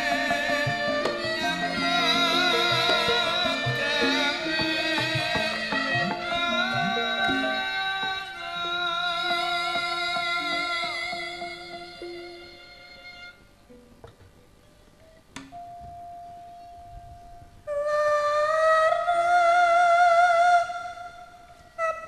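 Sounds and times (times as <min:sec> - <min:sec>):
woman singing into microphone: 0:00.0 - 0:12.7.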